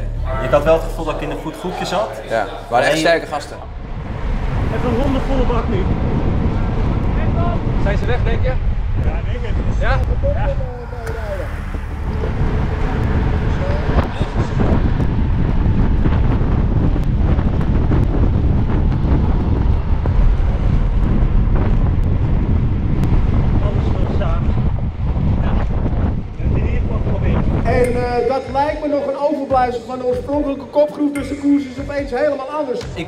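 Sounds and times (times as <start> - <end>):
wind buffeting microphone: 2.3 - 29.0.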